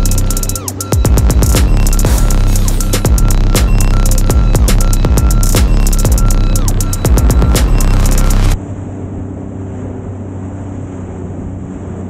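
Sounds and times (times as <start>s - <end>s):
loud electronic music: 0.0s - 8.6s
watercraft engine running: 0.0s - 12.0s.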